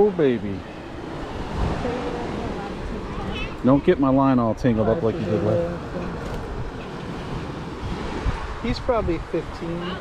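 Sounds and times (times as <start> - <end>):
surf rushing: 0.0 - 10.0
wind on microphone: 0.0 - 10.0.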